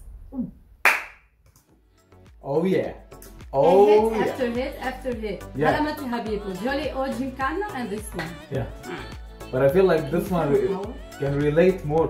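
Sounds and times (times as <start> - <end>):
sharp hand clap: 0.8 - 1.6.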